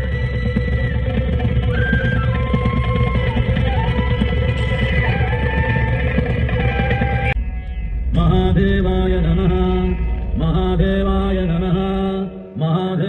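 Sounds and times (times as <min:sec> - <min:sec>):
loud music: 0:00.0 - 0:13.0
low drone: 0:00.0 - 0:13.0.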